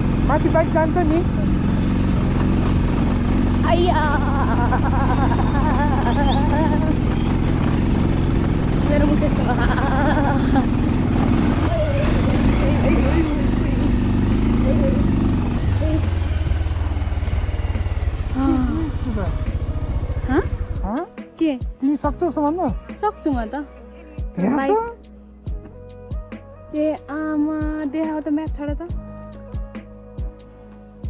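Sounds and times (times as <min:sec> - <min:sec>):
motorcycle engine running: 0:00.0 - 0:23.6.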